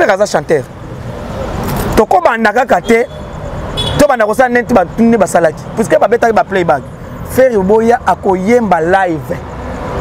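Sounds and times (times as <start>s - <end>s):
man talking: 0.0s - 0.8s, 1.9s - 3.2s, 3.8s - 9.6s.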